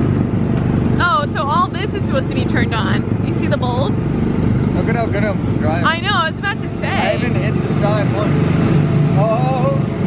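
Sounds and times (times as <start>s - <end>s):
small gasoline engine running: 0.0s - 10.0s.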